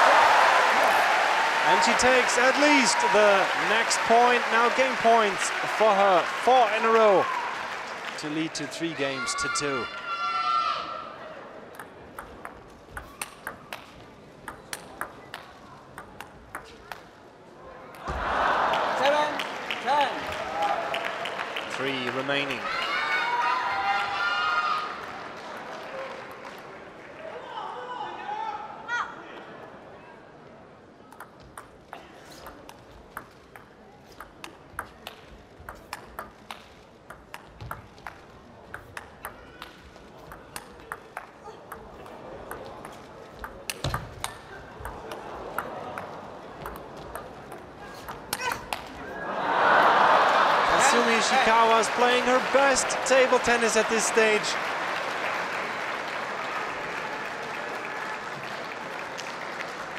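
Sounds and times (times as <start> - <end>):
crowd cheering and applause: 0.0 - 10.0, 18.0 - 27.4, 49.0 - 59.9
table tennis ball clicking: 11.7 - 17.1, 31.1 - 31.8, 32.4 - 48.9.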